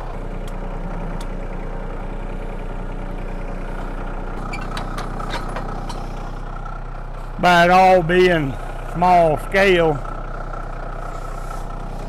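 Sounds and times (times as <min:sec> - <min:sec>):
tractor engine idling: 0:00.0 - 0:12.0.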